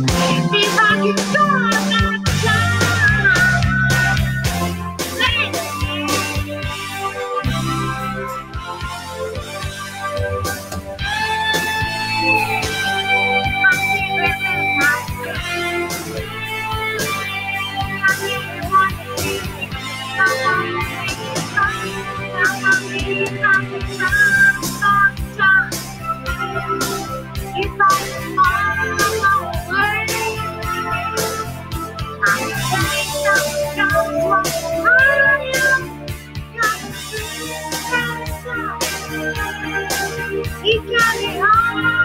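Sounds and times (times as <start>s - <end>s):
woman singing: 0.1s - 4.3s, 5.2s - 6.6s, 12.2s - 42.0s.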